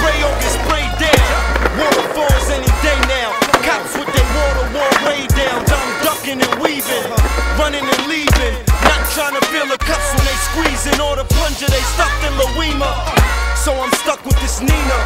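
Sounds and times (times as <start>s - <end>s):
hip hop music with deep bass: 0.0s - 15.0s
skateboard clacks: 0.0s - 15.0s
skateboard wheels rolling on pavement: 0.0s - 15.0s.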